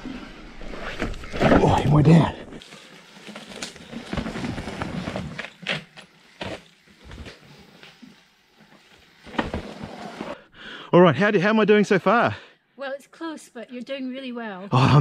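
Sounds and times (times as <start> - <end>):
bike tyres rolling on dirt: 0.3 - 10.5
bike rattling and knocking: 3.2 - 7.4.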